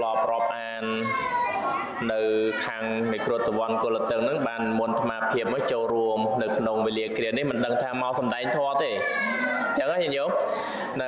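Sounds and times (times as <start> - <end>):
man preaching: 0.0 - 1.3, 2.0 - 11.0.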